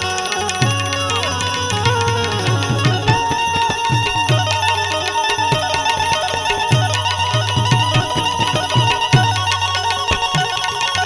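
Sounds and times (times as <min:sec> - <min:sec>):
bright high melody line: 0:00.0 - 0:11.0
tabla rapid rhythm: 0:00.0 - 0:11.0.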